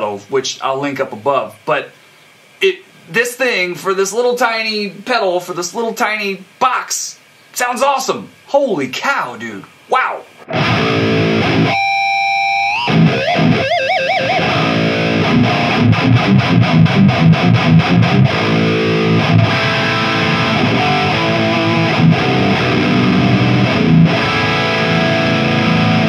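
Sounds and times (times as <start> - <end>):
distorted electric guitar: 10.3 - 26.0.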